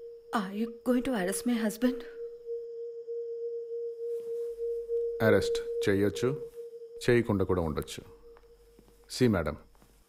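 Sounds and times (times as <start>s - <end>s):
steady pure tone: 0.0s - 9.9s.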